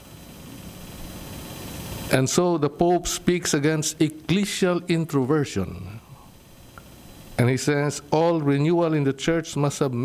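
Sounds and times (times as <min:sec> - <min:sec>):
room noise: 0:00.0 - 0:10.0
steady hiss: 0:00.0 - 0:10.0.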